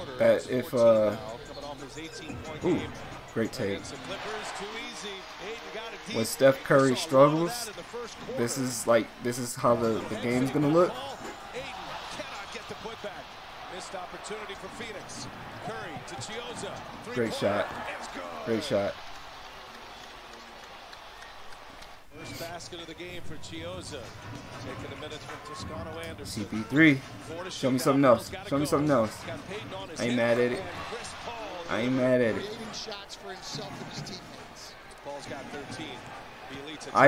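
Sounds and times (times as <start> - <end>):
arena crowd noise: 0.0 - 37.0.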